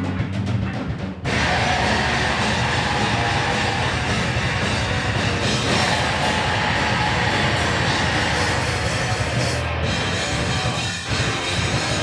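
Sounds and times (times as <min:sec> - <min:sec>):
punk rock band playing live: 0:00.0 - 0:12.0.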